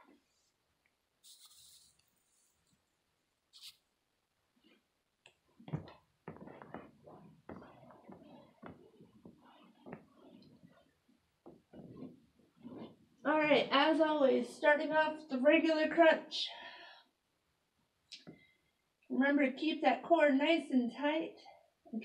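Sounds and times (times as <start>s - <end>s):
person shifting on carpet: 5.6s - 13.2s.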